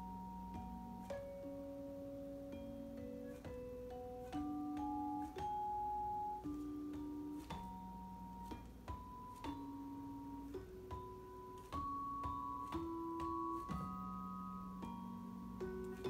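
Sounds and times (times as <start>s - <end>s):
vibraphone melody: 0.0s - 16.0s.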